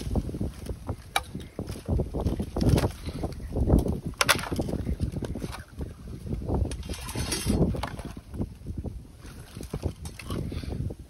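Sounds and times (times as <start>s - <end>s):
wind rumbling on microphone: 0.0s - 11.0s
water sloshing and splashing: 4.1s - 10.7s.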